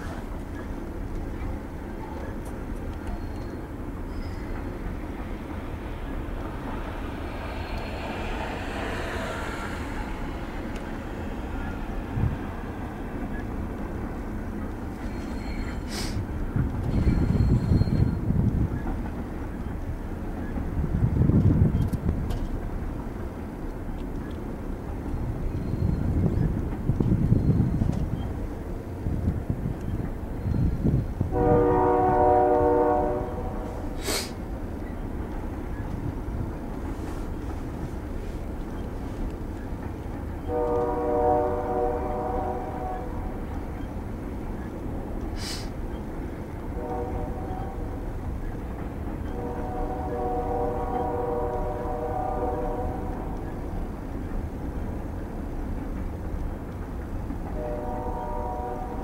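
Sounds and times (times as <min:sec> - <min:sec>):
train cars rolling past: 0:00.0 - 0:59.0
train horn: 0:06.6 - 0:12.7, 0:31.2 - 0:34.0, 0:40.4 - 0:43.6, 0:46.7 - 0:48.1, 0:49.2 - 0:53.5, 0:57.5 - 0:59.0.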